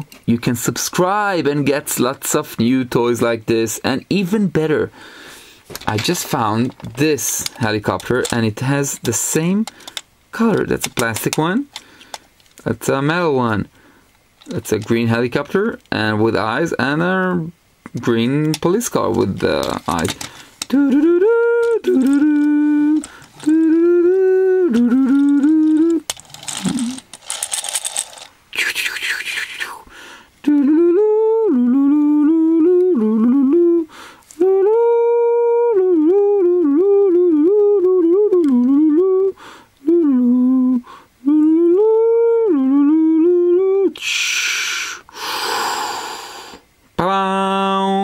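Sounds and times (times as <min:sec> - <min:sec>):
hiss-like noise: 0:11.6 - 0:30.6, 0:43.8 - 0:47.0
man humming a tune: 0:19.1 - 0:27.1, 0:28.5 - 0:48.0.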